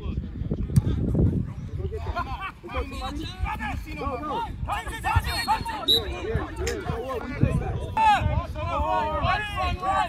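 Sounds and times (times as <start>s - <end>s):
people shouting and calling out: 1.6s - 10.0s.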